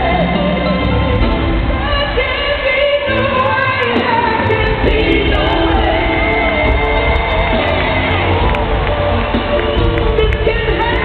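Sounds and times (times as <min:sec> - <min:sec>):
woman singing soul ballad: 0:00.0 - 0:01.0, 0:01.6 - 0:09.0, 0:09.7 - 0:11.0
band accompaniment with bass: 0:00.0 - 0:11.0.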